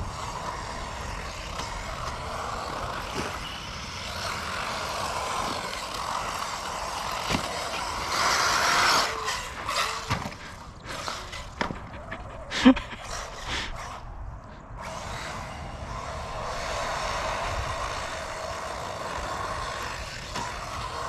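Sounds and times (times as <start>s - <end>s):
rc car motor and tyres: 0.0s - 21.0s.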